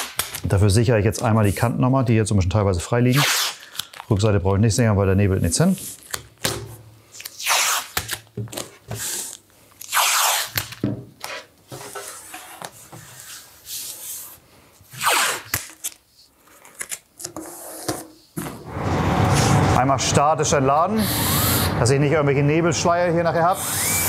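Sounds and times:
tape rubbed down by hand: 3.1s - 3.6s, 7.2s - 8.2s, 8.9s - 10.8s, 14.9s - 16.0s
masking tape ripping off roll: 3.1s - 4.1s, 7.2s - 8.3s, 9.0s - 10.8s, 14.9s - 16.0s.

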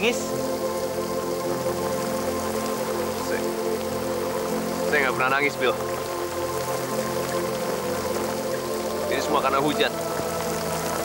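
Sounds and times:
music of long held chords: 0.0s - 11.0s
steady rain falling: 0.0s - 11.0s.

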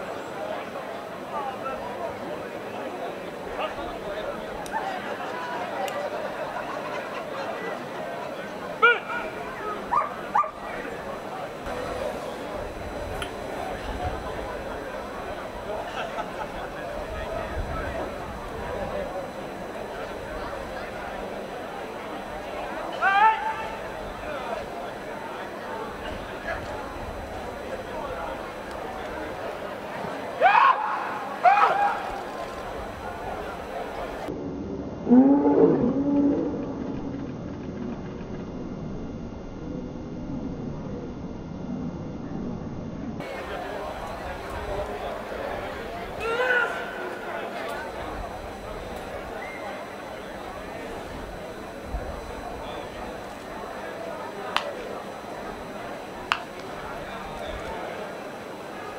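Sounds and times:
dog yipping: 9.9s - 10.6s
man shouting: 23.0s - 23.7s, 30.4s - 32.0s, 46.2s - 46.9s.

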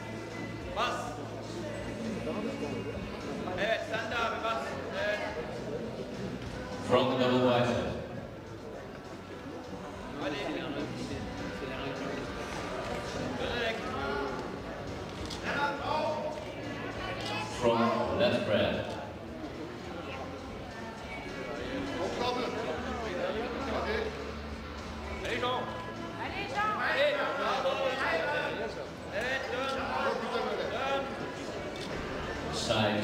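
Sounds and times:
background murmur in a large hall: 0.0s - 33.0s.

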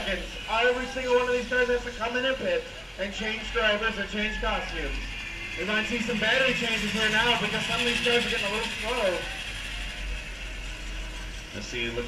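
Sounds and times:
low rumble: 0.0s - 12.0s
electric karts rattling past: 4.1s - 12.0s.

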